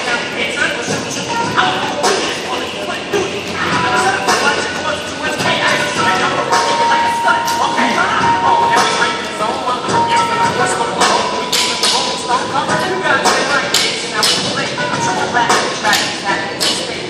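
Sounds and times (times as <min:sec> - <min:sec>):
voices echoing in hall: 0:00.0 - 0:17.0.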